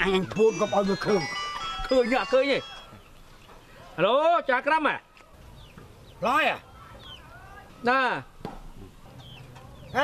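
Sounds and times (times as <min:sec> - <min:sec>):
chickens clucking: 0:00.0 - 0:04.0, 0:08.4 - 0:10.0.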